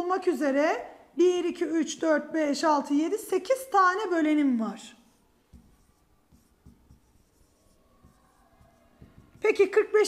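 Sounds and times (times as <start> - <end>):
stylus tapping and rubbing on touchscreen: 5.0 - 10.0
pen knocking on glass: 5.5 - 9.8.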